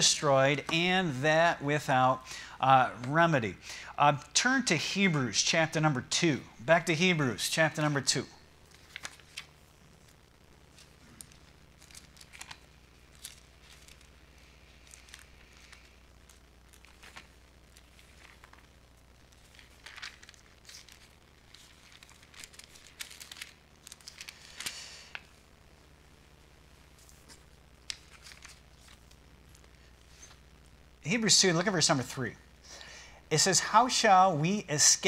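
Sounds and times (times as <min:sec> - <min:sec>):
low steady hum: 0:00.0 - 0:35.0
thin pages rustling: 0:08.6 - 0:25.3, 0:26.9 - 0:30.5.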